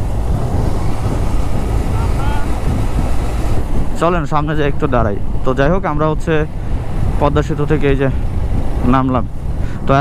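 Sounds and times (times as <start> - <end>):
motorcycle engine and wind rumble: 0.0 - 10.0
man talking: 1.9 - 2.6, 4.0 - 6.5, 8.8 - 10.0.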